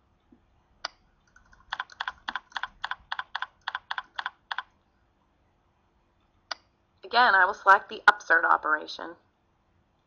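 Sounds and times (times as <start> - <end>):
keyboard typing: 0.8 - 4.8.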